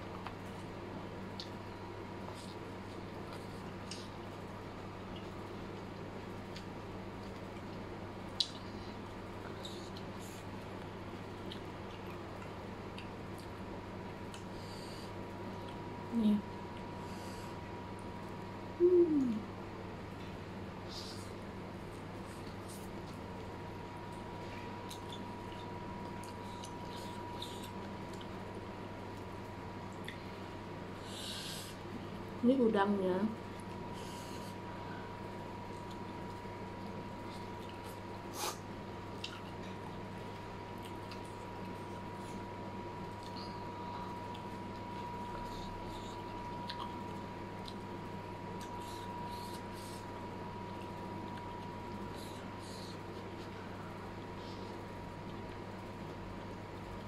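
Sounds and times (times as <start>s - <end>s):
faint steady whine: 0.0s - 57.0s
steady low hum: 0.0s - 57.0s
close-up chewing: 5.0s - 16.0s, 21.0s - 30.4s, 33.5s - 53.8s.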